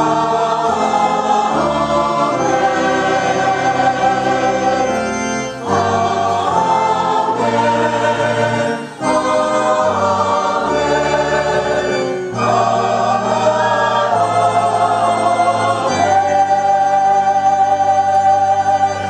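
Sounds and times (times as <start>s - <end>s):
church choir singing: 0.0s - 19.0s
organ: 0.0s - 19.0s.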